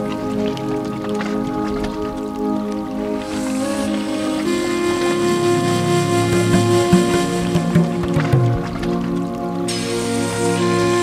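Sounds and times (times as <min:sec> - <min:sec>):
music of sustained chords: 0:00.0 - 0:11.0.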